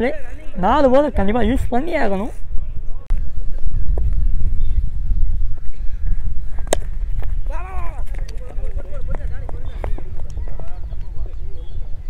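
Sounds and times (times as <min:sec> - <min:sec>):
wind rumble on microphone: 0:00.0 - 0:12.0
cricket bat striking ball: 0:06.6 - 0:07.4
people shouting: 0:07.5 - 0:08.0.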